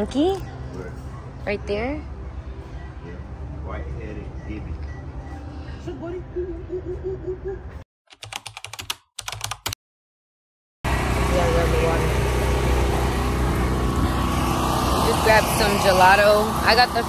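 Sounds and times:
loud outdoor rumble: 0:10.8 - 0:17.0.

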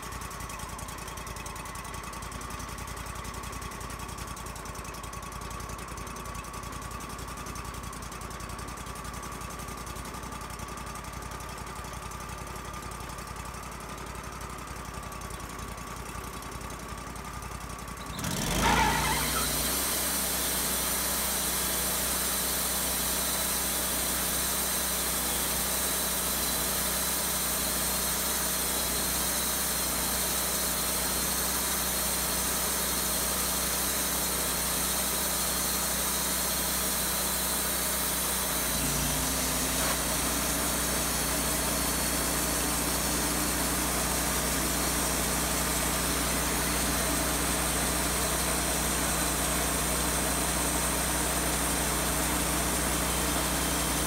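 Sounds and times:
band sawmill running: 0:00.0 - 0:54.0
saw blade cutting log: 0:18.2 - 0:20.7, 0:33.3 - 0:50.4.

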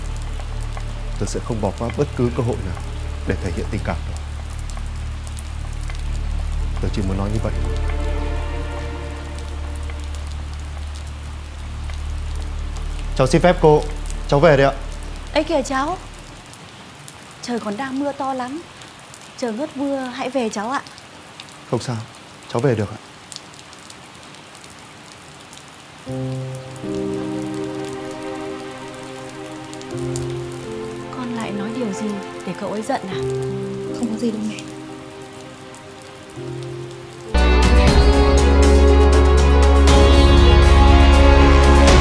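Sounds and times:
soft held chords music: 0:00.0 - 0:16.4
heavy rain: 0:00.0 - 0:42.0.

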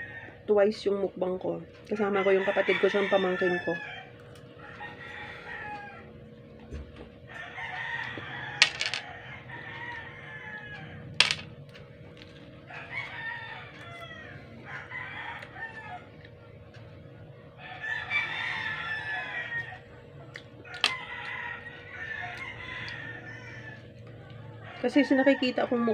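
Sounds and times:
roosters crowing: 0:01.9 - 0:25.9.

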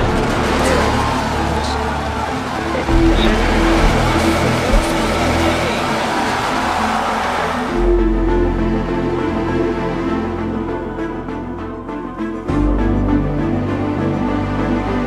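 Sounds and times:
rocket engines roaring: 0:00.0 - 0:09.0
trailer music low note: 0:00.0 - 0:15.0.

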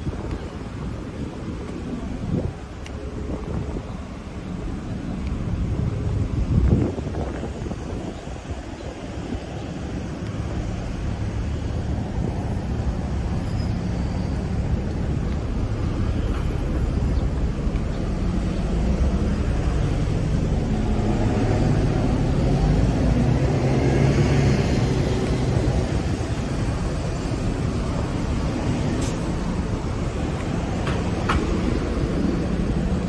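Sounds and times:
city road traffic rumble: 0:00.0 - 0:33.0
vehicle passing: 0:17.6 - 0:33.0.

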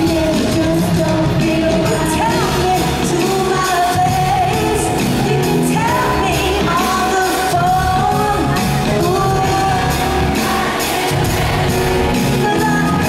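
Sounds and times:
pop backing with drums and bass: 0:00.0 - 0:13.0
female group singing in harmony: 0:05.9 - 0:13.0.

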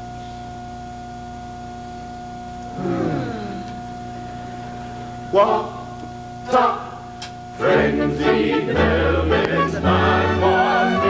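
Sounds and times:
electrical hum with high whine: 0:00.0 - 0:11.0.

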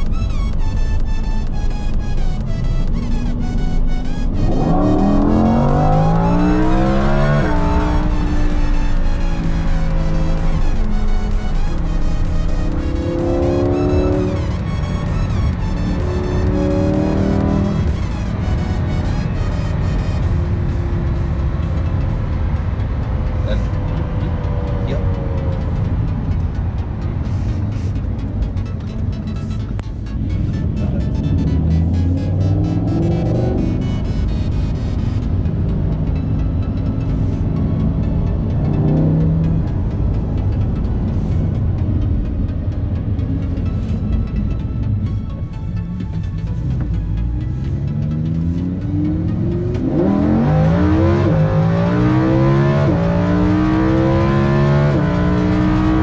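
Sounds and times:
car engine revving: 0:00.0 - 0:56.0
music: 0:00.0 - 0:56.0.

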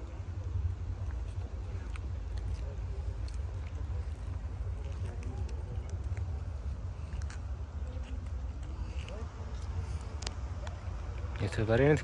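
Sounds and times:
distant voices: 0:00.0 - 0:12.0
wind rumbling on microphone: 0:00.0 - 0:12.0.

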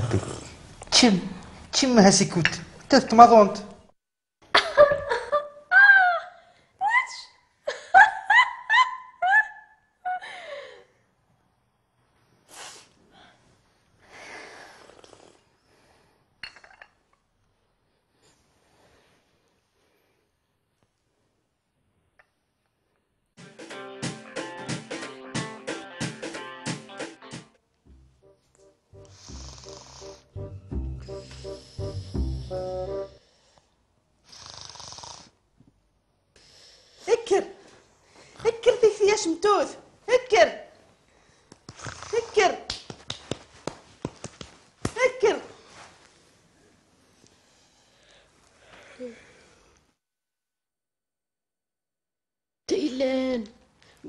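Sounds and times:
woman snoring: 0:00.0 - 0:00.6, 0:29.0 - 0:30.4, 0:34.2 - 0:35.4, 0:41.8 - 0:42.4
woman laughing: 0:04.5 - 0:06.4, 0:07.7 - 0:10.5.

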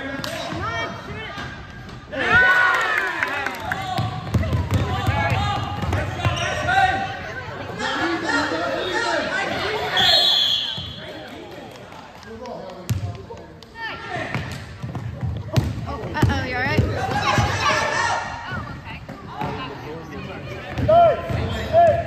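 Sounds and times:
shouts and chatter: 0:00.5 - 0:04.2, 0:17.0 - 0:22.0
sneaker squeal: 0:09.8 - 0:11.0, 0:21.3 - 0:22.0.

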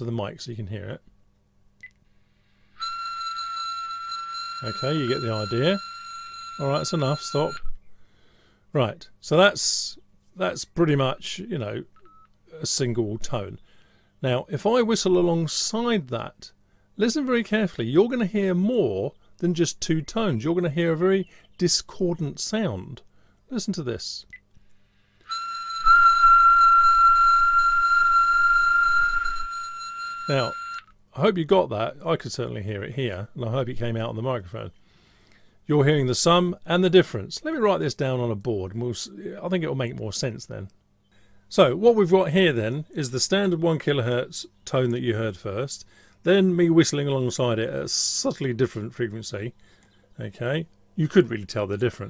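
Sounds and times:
steady whistled tone: 0:02.8 - 0:05.9, 0:25.2 - 0:30.9.

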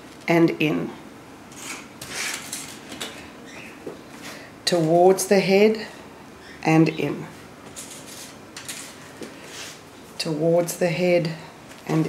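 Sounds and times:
hair and hairnet scratching: 0:01.5 - 0:02.8, 0:07.7 - 0:09.8.

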